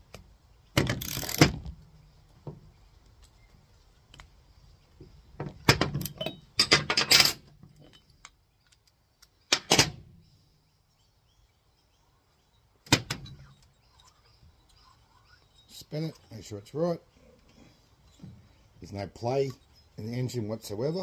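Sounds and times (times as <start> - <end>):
metal tools clattering: 6.0 - 8.2.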